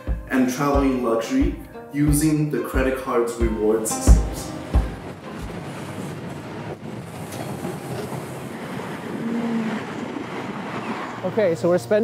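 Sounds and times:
subway train rumble: 0:03.4 - 0:12.0.

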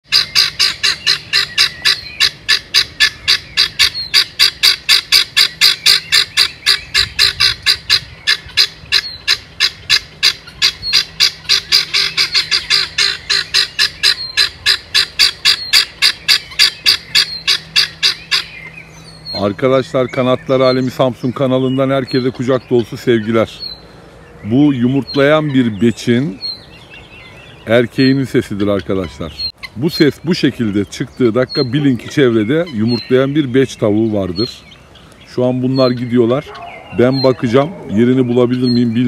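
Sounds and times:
guineafowl harsh rapid calls: 0:00.0 - 0:39.0.

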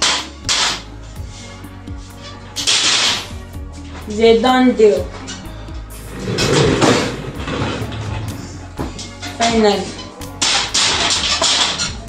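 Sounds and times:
quiet background music: 0:00.0 - 0:12.0
ironing board swishes and scrapes: 0:05.9 - 0:11.7.

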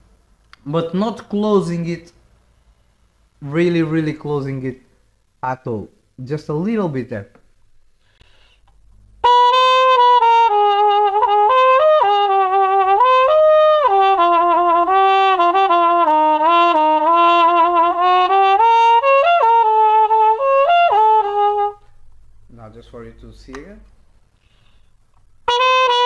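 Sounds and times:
muted trumpet melody: 0:09.2 - 0:21.9, 0:25.4 - 0:26.0.

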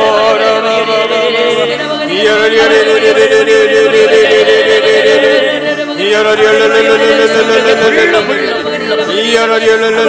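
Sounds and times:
person chanting rapid syllables: 0:07.4 - 0:09.3.

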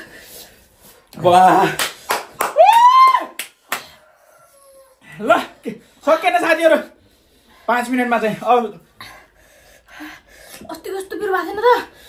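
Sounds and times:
person whooping: 0:02.4 - 0:03.4.

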